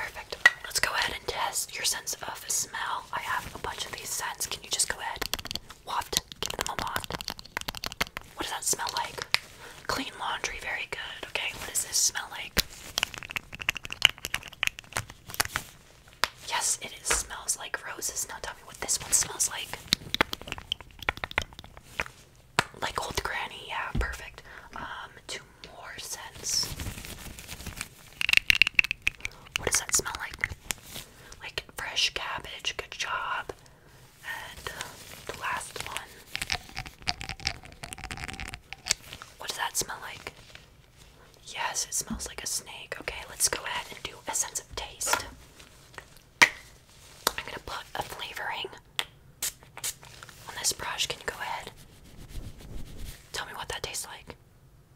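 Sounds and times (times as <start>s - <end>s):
close-up whispering: 0.0s - 7.3s, 8.3s - 12.6s, 16.4s - 20.0s, 22.7s - 26.8s, 29.2s - 30.6s, 31.2s - 40.4s, 41.3s - 45.4s, 47.3s - 48.8s, 50.4s - 51.8s, 53.3s - 54.4s
glass bottles clicking and tapping: 13.0s - 14.8s, 28.2s - 29.4s, 36.4s - 39.0s.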